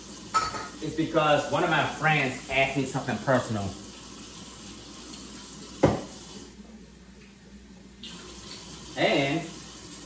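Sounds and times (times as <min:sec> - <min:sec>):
tap running into sink: 0:05.8 - 0:06.2.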